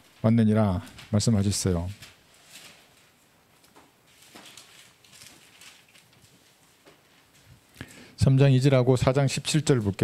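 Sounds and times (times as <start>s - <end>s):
thin pages being turned: 1.9s - 7.5s.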